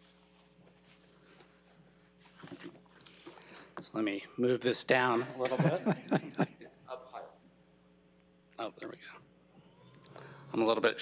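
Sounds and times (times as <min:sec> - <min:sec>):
soft shuffling sounds: 0:00.0 - 0:03.9
faint steady hum: 0:00.0 - 0:11.0.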